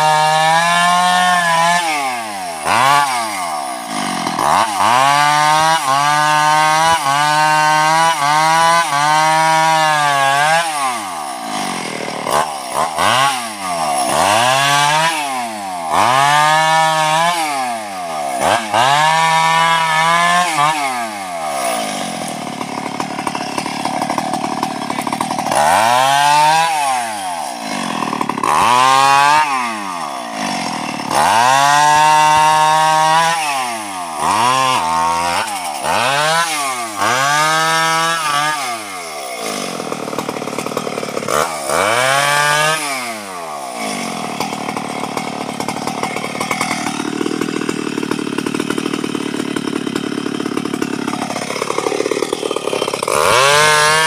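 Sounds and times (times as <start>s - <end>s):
chainsaw revving and idling: 0.0s - 54.0s.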